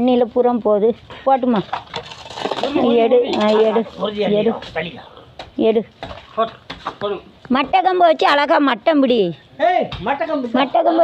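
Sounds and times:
people talking: 2.6 - 5.8.

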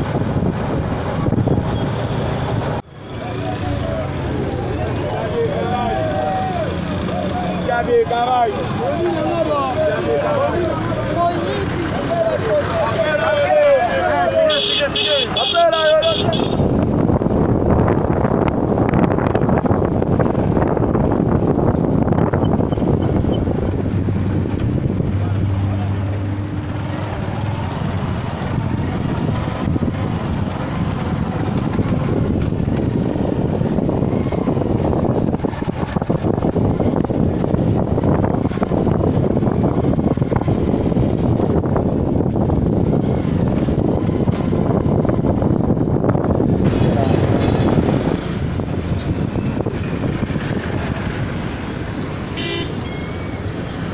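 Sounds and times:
wind noise on microphone: 0.0 - 7.8, 16.0 - 53.9.

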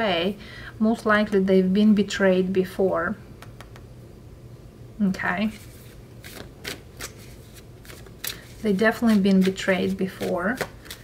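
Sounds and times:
cards being shuffled: 5.4 - 11.0.

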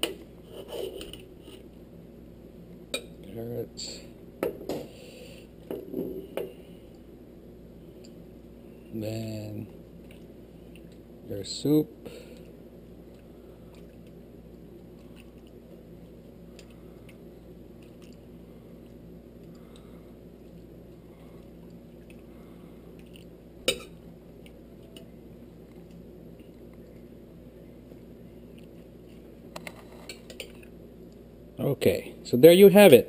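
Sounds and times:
low hum: 0.0 - 32.4.

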